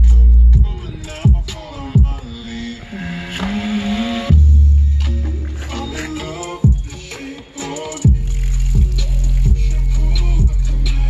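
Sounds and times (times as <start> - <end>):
pop song through speaker: 0.0 - 11.0.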